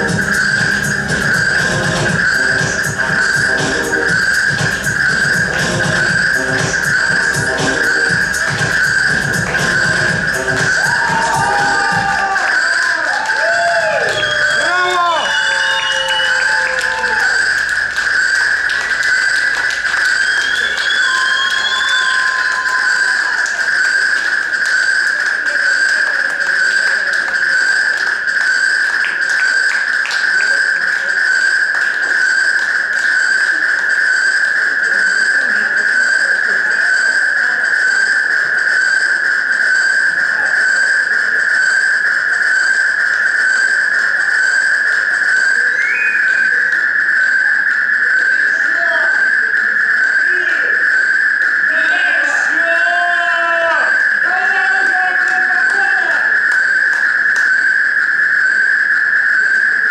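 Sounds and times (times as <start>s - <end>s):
high-pitched electronic drone: 0.0s - 59.9s
whistle-like glides: 0.0s - 59.9s.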